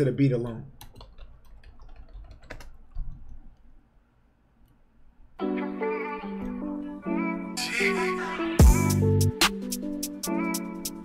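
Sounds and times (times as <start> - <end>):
computer keyboard key clicks: 0.8 - 3.4.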